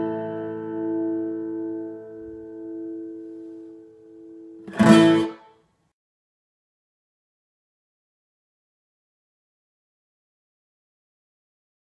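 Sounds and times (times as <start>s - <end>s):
acoustic guitar chord ringing: 0.0s - 5.6s
loud guitar string burst: 4.7s - 5.5s.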